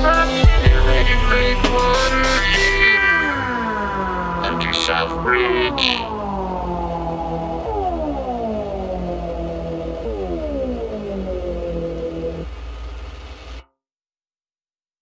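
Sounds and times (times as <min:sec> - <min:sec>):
electronic music: 0:00.0 - 0:13.6
low bass: 0:00.0 - 0:13.6
synthesizer chord sliding down: 0:00.0 - 0:13.6.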